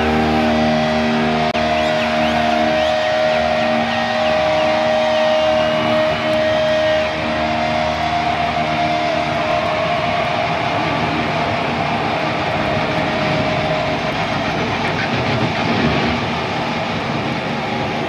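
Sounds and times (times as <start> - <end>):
distorted electric guitar: 0.0 - 18.0.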